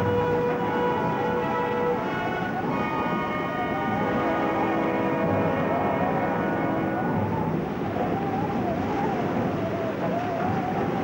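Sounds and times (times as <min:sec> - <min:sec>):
held chord of steady tones: 0:00.0 - 0:09.4
heavy waves breaking: 0:00.0 - 0:11.0.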